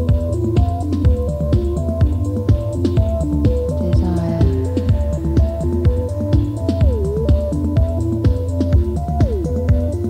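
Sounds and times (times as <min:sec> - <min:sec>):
steady drum beat: 0:00.0 - 0:09.9
bass line: 0:00.0 - 0:10.0
synthesizer sequence: 0:00.0 - 0:10.0.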